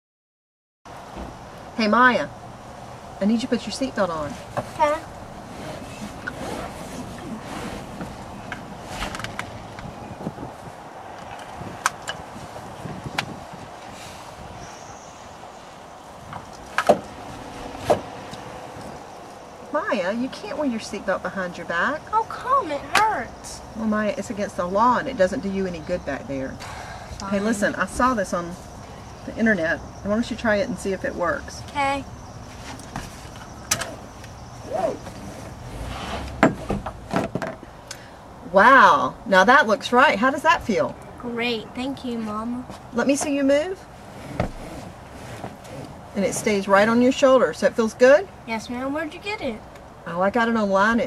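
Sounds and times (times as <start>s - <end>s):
low car hum: 0.9s - 51.0s
car cabin noise: 3.2s - 13.9s, 16.2s - 23.3s
seat belt webbing rustle: 4.3s - 9.5s.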